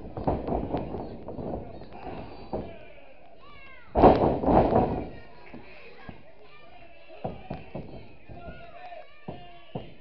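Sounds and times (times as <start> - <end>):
light thump: 4.0 - 5.1
wrestler slamming onto ring mat: 4.0 - 5.1.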